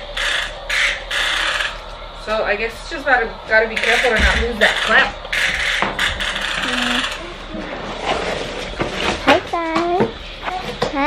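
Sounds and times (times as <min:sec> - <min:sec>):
metal stroller frame scraping and rattling: 0:07.6 - 0:09.4.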